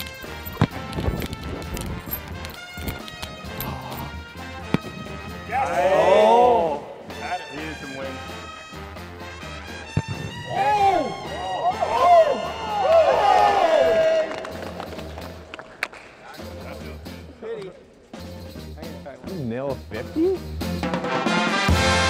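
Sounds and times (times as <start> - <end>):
background music with steady bass: 0.0 - 15.5, 18.0 - 22.0
football kicked thud: 9.9 - 10.5.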